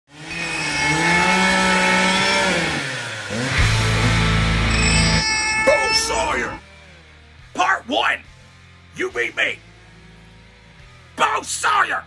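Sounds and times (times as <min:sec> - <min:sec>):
loud deep steady drone: 0:00.1 - 0:06.9
engine running at high revs: 0:00.1 - 0:07.3, 0:09.5 - 0:11.2.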